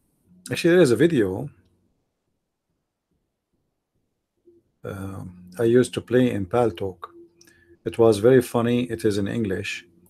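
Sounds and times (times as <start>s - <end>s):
man saying um: 4.9s - 7.1s.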